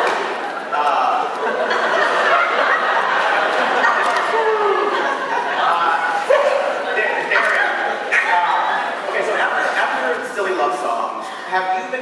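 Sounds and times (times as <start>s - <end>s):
group of people laughing: 0.0s - 10.1s.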